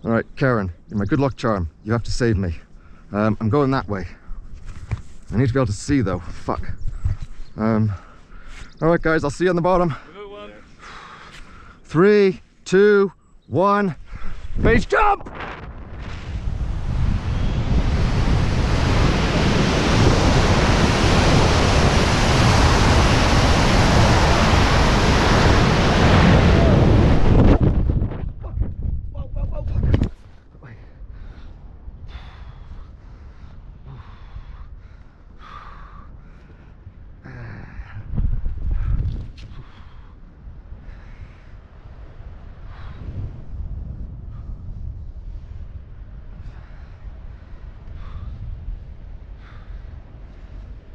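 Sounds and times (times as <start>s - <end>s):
wind rushing on microphone: 0.0s - 11.0s, 13.6s - 50.9s.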